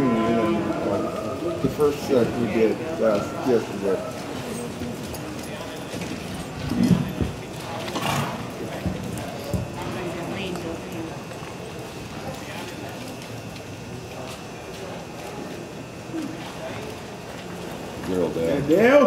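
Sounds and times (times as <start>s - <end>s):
voices in background: 0.0s - 19.0s.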